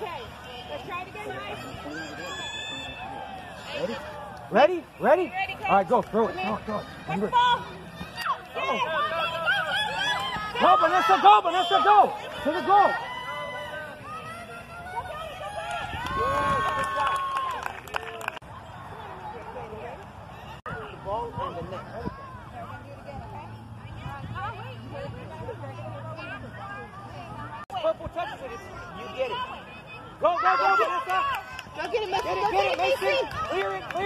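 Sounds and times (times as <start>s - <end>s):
people shouting: 6.3s - 16.7s.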